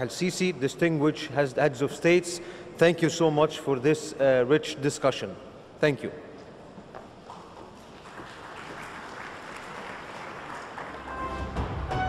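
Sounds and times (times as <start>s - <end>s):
audience applauding: 7.8s - 12.0s
orchestral brass music: 11.0s - 12.0s.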